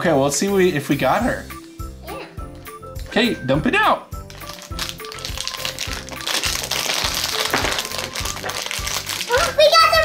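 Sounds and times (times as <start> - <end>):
background music with steady beat: 0.0 - 10.0
foil bag crinkling: 4.2 - 10.0
plastic pieces clattering on table: 4.3 - 9.6.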